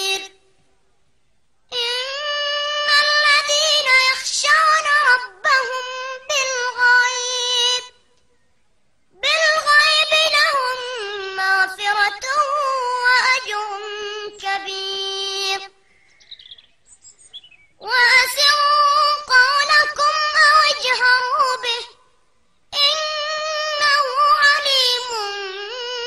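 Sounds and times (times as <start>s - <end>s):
child chanting melodically: 0.0s - 0.6s, 1.7s - 8.2s, 9.2s - 15.9s, 17.8s - 26.0s.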